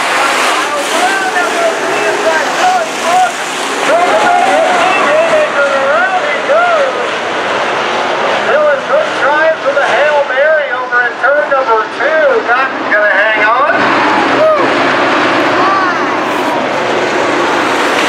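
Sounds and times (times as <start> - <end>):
race car engines at speed: 0.0 - 18.0.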